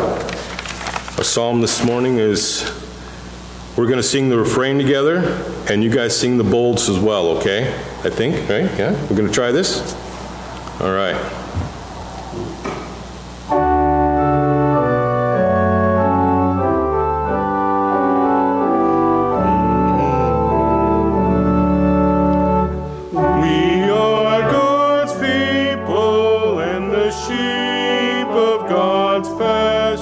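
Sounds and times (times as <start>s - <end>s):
organ playing sustained chords: 13.1s - 30.0s
voices singing: 19.3s - 30.0s.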